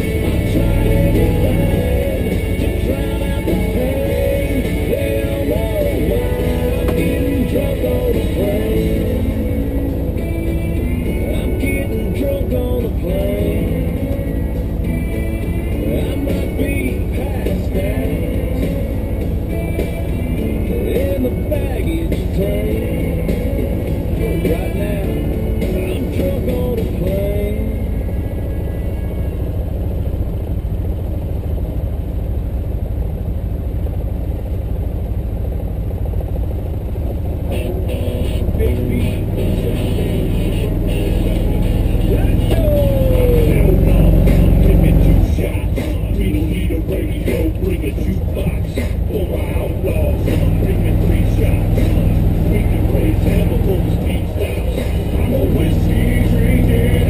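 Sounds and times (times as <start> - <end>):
music playing: 0.0 - 30.3, 37.5 - 57.0
vehicle engine rumbling: 0.0 - 57.0.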